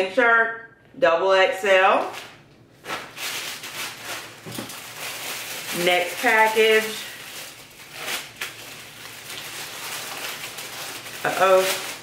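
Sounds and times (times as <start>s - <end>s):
packaging rustling and crinkling: 2.1s - 12.0s.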